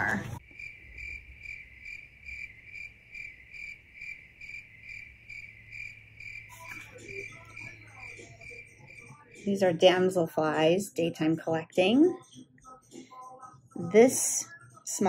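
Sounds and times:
insect chirping: 0.4 - 9.2.

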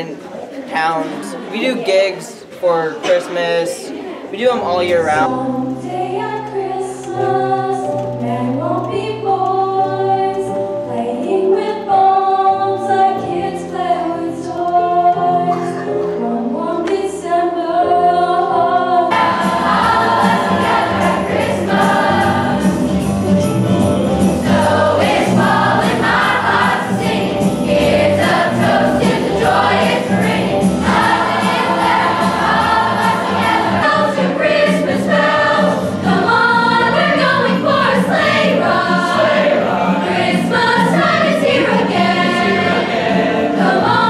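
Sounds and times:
choir singing with accompaniment: 5.0 - 44.0
backing music with steady beat: 19.1 - 44.0.

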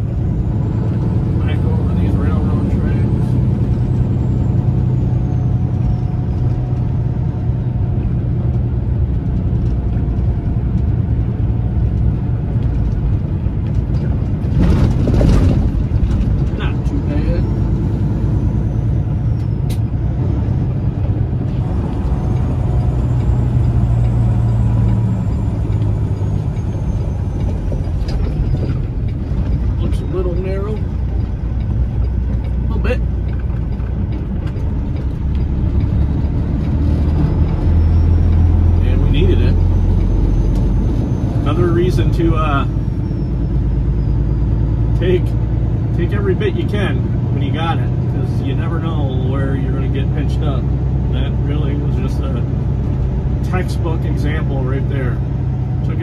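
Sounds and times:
truck diesel engine drone: 0.0 - 56.0.

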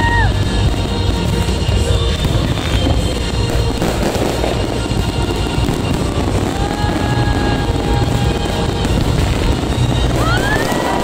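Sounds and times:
fireworks crackling and bursting: 0.0 - 11.0
loud music playing: 0.0 - 11.0.

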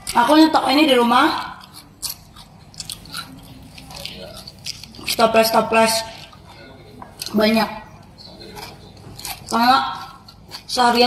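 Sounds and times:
chewing crispy potato sticks: 0.0 - 11.0.

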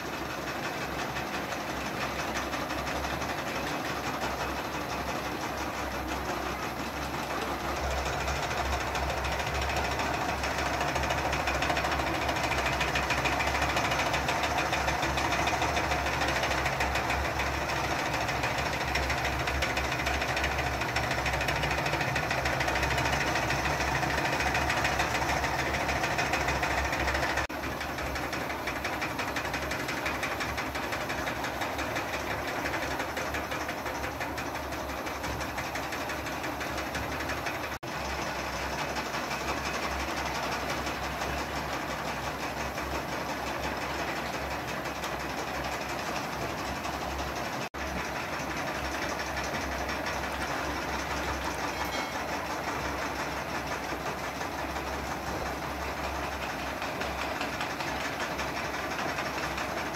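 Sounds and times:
spinning machine motor whir: 0.0 - 59.9.

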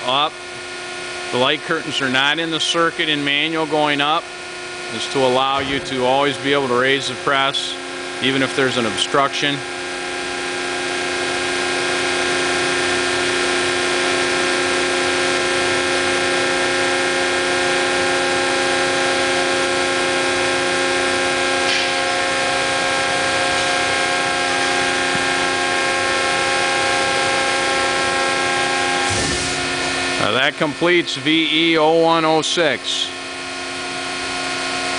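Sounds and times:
hydraulic power unit humming: 0.0 - 34.9.

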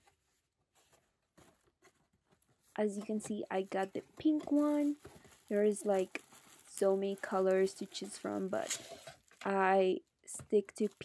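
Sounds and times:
cardboard box rustling: 0.0 - 9.4.

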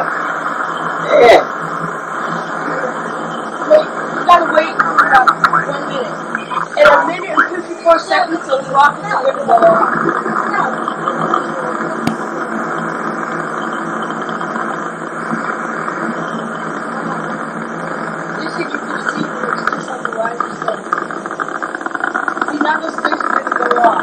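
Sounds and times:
rocket engines rushing: 0.0 - 24.0.

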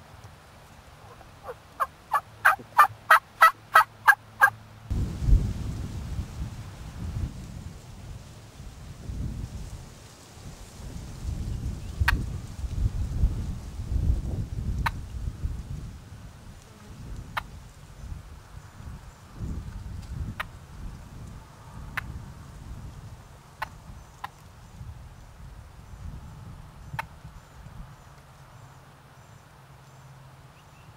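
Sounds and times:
turkey yelps: 1.0 - 4.5
low rumbling on microphone: 4.9 - 9.9.

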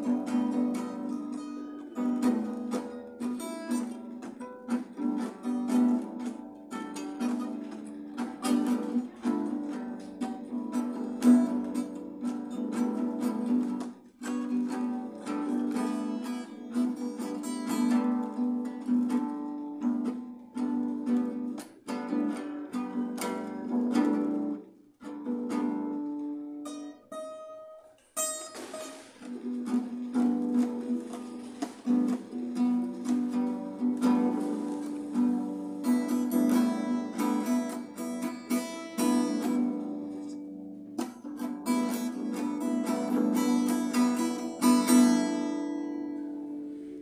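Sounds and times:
acoustic guitar strumming: 0.0 - 47.0.

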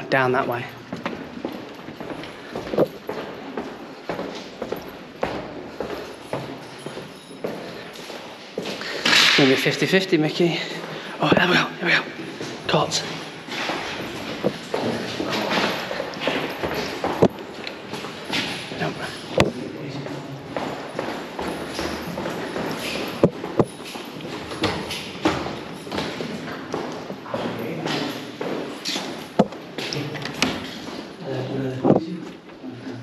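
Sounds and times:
footsteps on hard floor: 0.3 - 9.4, 10.6 - 32.6.

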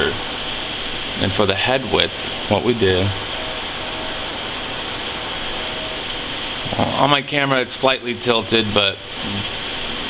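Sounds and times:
fan hiss: 0.0 - 10.0.

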